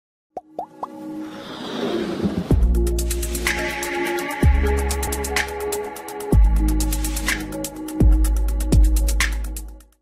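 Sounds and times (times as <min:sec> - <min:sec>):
intro music: 0:02.2 - 0:09.9.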